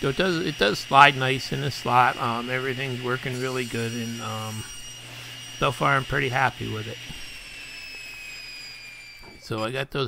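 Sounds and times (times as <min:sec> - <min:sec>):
table saw spinning down: 0:00.0 - 0:10.0.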